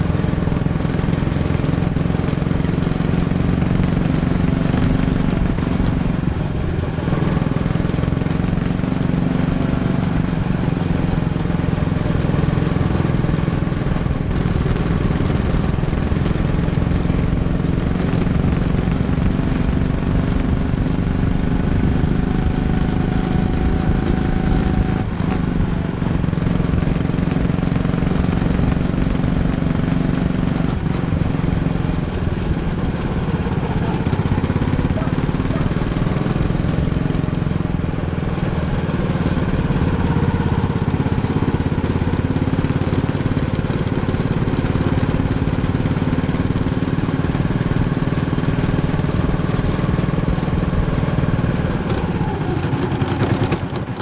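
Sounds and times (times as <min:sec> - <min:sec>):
race car engine at full throttle: 0:00.0 - 0:54.0.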